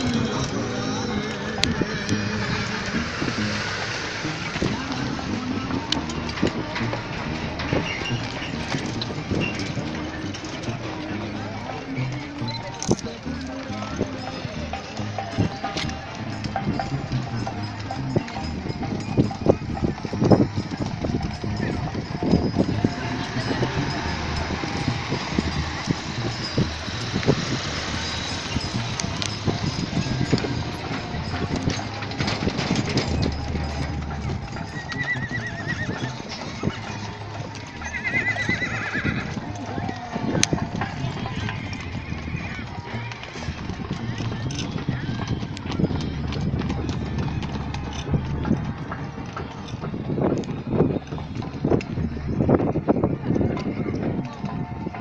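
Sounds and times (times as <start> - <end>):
hooves clip-clopping on dirt: 0.0 - 55.0
riders' voices chattering: 0.0 - 55.0
horse whinnying: 34.5 - 42.7.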